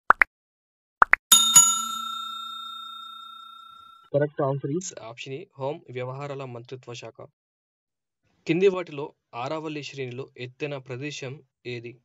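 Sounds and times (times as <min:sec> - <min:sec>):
bell ding ringing: 0:01.3 - 0:04.1.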